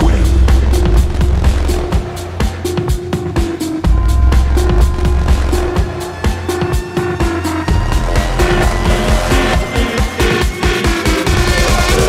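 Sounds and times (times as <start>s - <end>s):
distorted kick drums: 0.0s - 12.0s
heavy bass: 0.0s - 12.0s
repeating synth melody: 3.8s - 11.3s.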